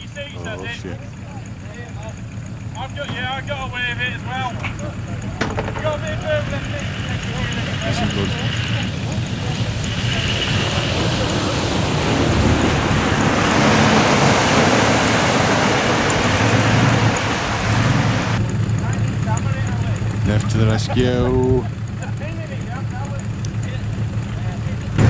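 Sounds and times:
off-road vehicle engine running: 0:00.0 - 0:25.0
loud rushing noise: 0:09.3 - 0:18.4.

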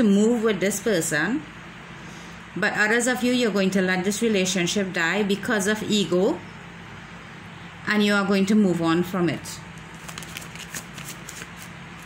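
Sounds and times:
cards being shuffled: 0:09.8 - 0:12.0.

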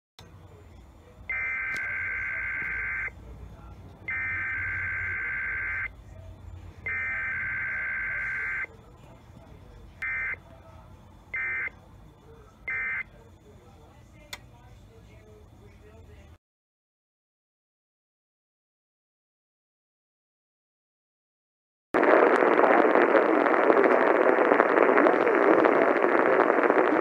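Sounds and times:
buzzy digital data bursts: 0:06.9 - 0:08.7, 0:22.0 - 0:27.0
low hum: 0:22.0 - 0:27.0.

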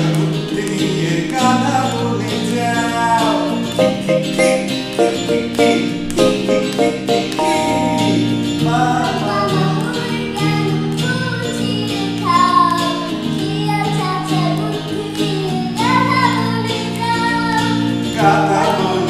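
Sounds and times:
plucked string accompaniment: 0:00.0 - 0:19.0
child singing: 0:08.9 - 0:19.0.

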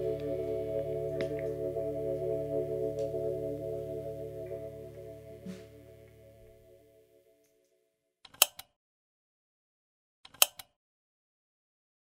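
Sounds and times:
electric guitars sustained chord: 0:00.0 - 0:07.1.

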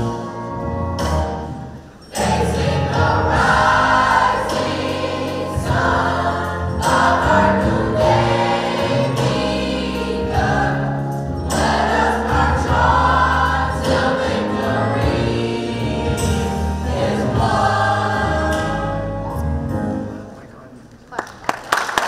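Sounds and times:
gospel choir singing: 0:02.1 - 0:19.5.

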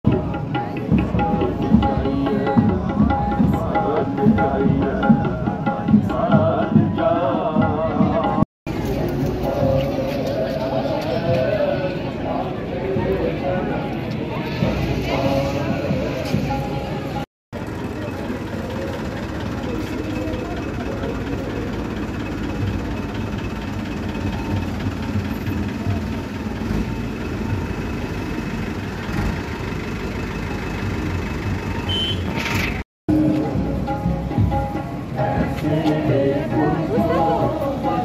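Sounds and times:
many voices: 0:00.1 - 0:28.2, 0:33.1 - 0:38.0
vehicle engines running: 0:00.1 - 0:38.0.

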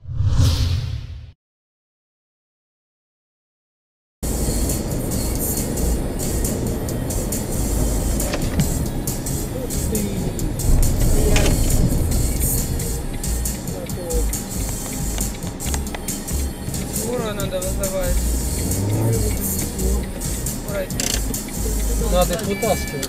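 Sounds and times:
sharp crash: 0:00.0 - 0:01.4
car road noise: 0:04.2 - 0:23.0.

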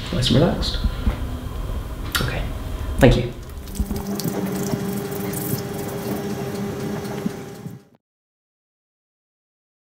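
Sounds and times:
low hum: 0:00.0 - 0:08.0.

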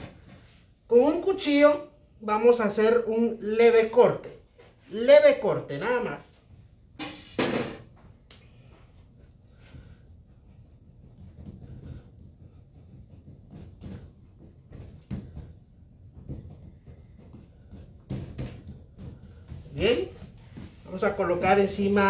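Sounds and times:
soft knocks and thumps on dough: 0:07.8 - 0:22.0.

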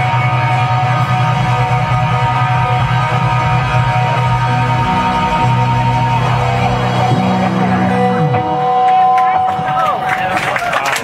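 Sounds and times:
sustained low note: 0:00.0 - 0:09.3
bass guitar: 0:00.0 - 0:10.8
electric guitar: 0:00.0 - 0:11.0.

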